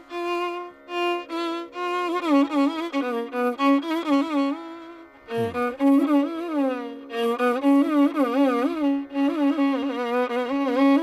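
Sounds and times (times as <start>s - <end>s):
violin melody with sliding pitch: 0.0s - 11.0s.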